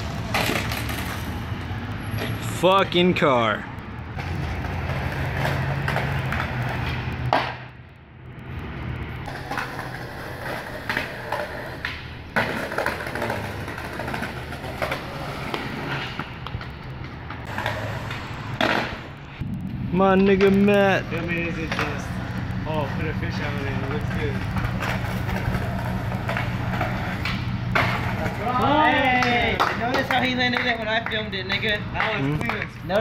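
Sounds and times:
skateboard wheels rolling on asphalt: 0:00.0 - 0:33.0
skateboard clacking on ground: 0:00.2 - 0:01.4, 0:04.1 - 0:07.8, 0:09.2 - 0:19.1, 0:21.6 - 0:22.1, 0:23.9 - 0:33.0.

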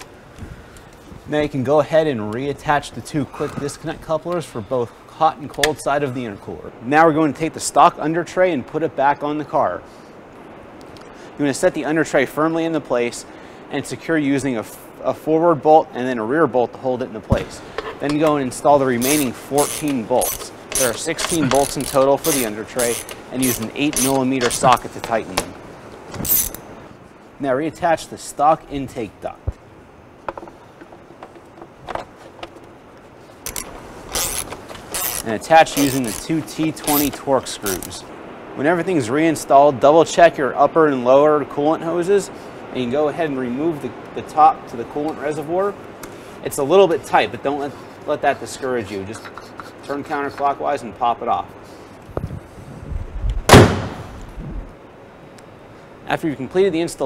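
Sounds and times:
car hood slammed shut: 0:53.5 - 0:54.0.

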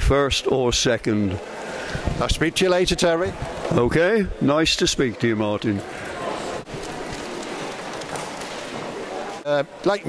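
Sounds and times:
crowd hubbub in a large hall: 0:00.0 - 0:10.0.

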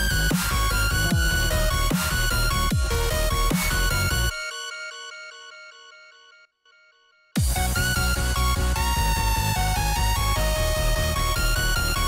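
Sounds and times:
electronic beat bass and drums: 0:00.0 - 0:04.4, 0:07.4 - 0:12.0
bell-like synth notes: 0:00.0 - 0:09.1.

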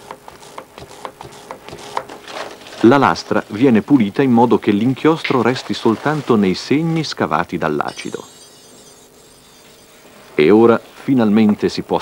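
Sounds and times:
ink dabber knocking and rubbing: 0:00.0 - 0:02.2, 0:07.9 - 0:11.6.

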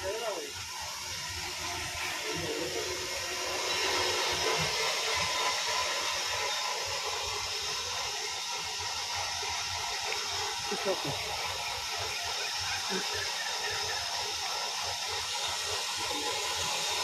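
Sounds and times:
steady rushing hiss: 0:00.0 - 0:17.0.

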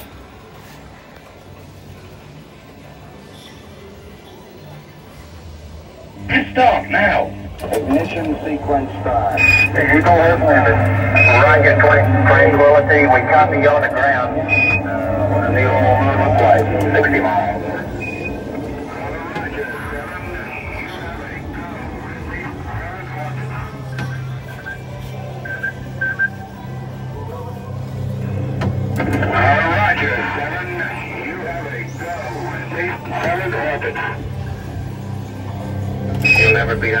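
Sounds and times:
ride low steady hum: 0:05.2 - 0:37.0
recorded radio voices and effects: 0:06.2 - 0:26.3, 0:28.8 - 0:34.4, 0:36.2 - 0:37.0.

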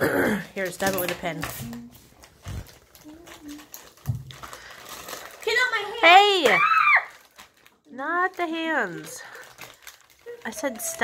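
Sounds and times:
plastic snack packet crinkling: 0:00.5 - 0:11.0.

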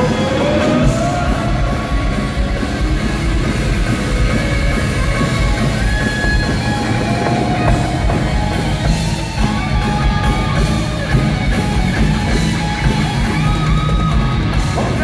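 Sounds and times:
live rock band playing: 0:00.0 - 0:15.0.

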